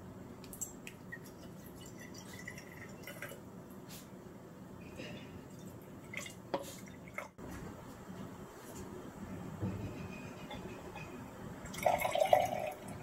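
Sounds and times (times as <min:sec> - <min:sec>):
water pouring into glass mugs: 0:01.1 - 0:03.4, 0:11.6 - 0:13.0.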